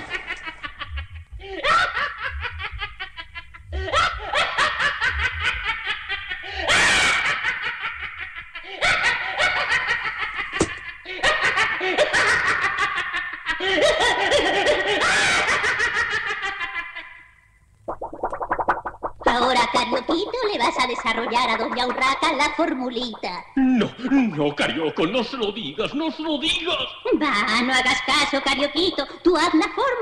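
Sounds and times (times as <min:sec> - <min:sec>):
cartoon witch cackling: 0:19.3 - 0:23.5.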